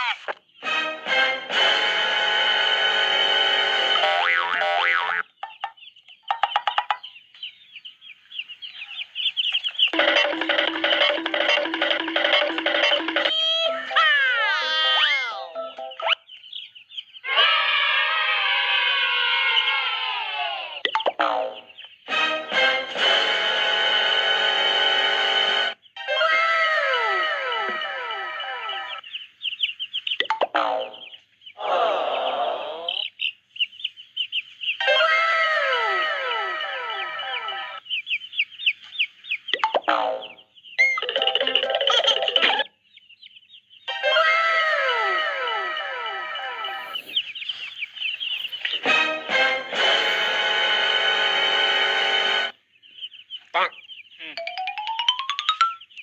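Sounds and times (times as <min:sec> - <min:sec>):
playful background music: 0:00.0 - 0:07.1, 0:09.9 - 0:16.4, 0:20.4 - 0:29.1, 0:30.2 - 0:31.7, 0:34.8 - 0:37.8, 0:39.6 - 0:42.8, 0:43.8 - 0:47.1, 0:48.6 - 0:52.6, 0:54.3 - 0:56.0.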